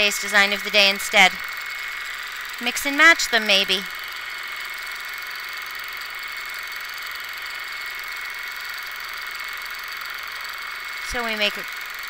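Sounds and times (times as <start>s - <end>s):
quilting machine whirring: 0.0s - 12.0s.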